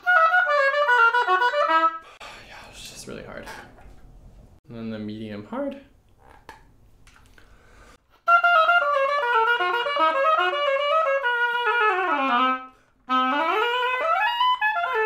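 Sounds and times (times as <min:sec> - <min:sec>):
oboe playing quick runs: 0:00.0 - 0:02.1, 0:08.2 - 0:15.0
player breathing: 0:07.3 - 0:08.0.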